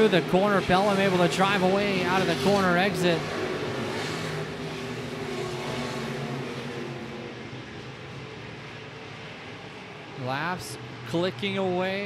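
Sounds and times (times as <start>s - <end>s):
race car engines running: 0.0s - 12.0s.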